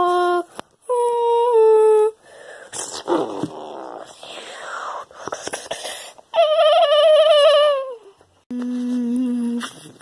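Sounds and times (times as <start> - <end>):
person humming a held note: 8.5 - 9.9.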